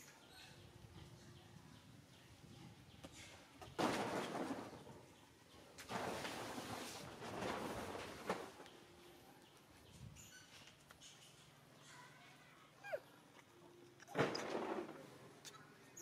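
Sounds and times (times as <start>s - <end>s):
faint birds: 0.0s - 16.0s.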